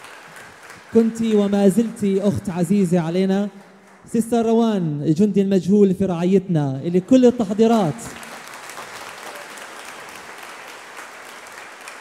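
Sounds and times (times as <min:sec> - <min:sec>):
crowd clapping: 0:00.0 - 0:05.0, 0:06.9 - 0:12.0.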